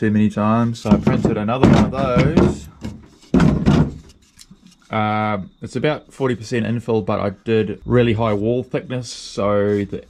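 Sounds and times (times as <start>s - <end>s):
man talking: 0.0s - 2.8s, 4.9s - 10.0s.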